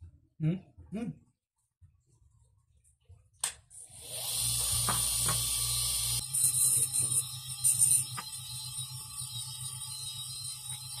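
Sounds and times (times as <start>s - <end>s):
dental motor handpiece whirring: 3.9s - 11.0s.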